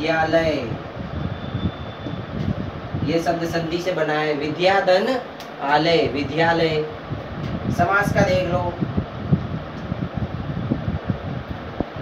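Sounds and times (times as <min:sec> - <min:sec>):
steady rumbling background noise: 0:00.0 - 0:12.0.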